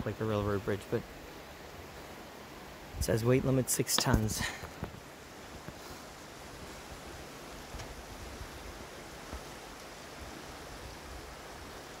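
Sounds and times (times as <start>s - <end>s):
creek rushing: 0.0s - 12.0s.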